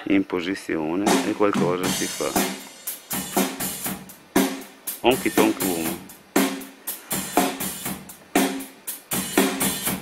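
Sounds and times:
sharp drum kit hits: 0:01.0 - 0:10.0.

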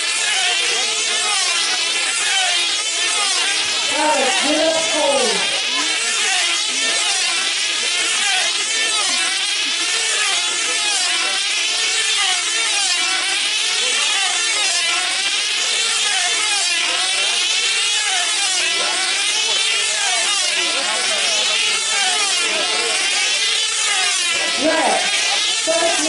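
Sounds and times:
model aircraft engines whining: 0:00.0 - 0:26.0.

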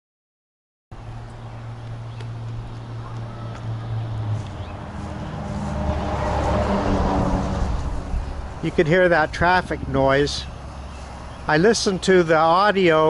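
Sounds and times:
vehicle engine drone: 0:00.9 - 0:13.0.

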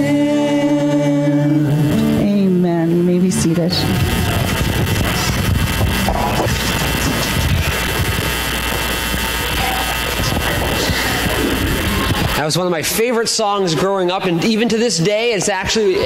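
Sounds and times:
band playing sustained low note: 0:01.6 - 0:12.4
dense wash of noise: 0:03.5 - 0:13.8.

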